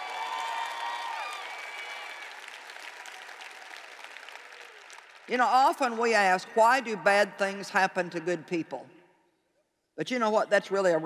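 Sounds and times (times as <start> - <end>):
audience applauding: 0.0 - 5.3.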